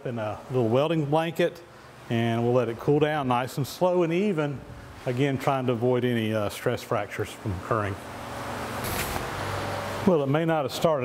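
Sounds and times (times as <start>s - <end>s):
short hiss: 8.8s - 9.4s.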